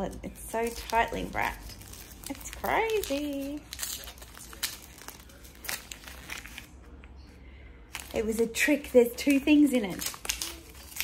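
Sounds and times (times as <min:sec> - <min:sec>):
gift wrapping crinkling and tearing: 0:00.0 - 0:07.0, 0:07.8 - 0:11.0.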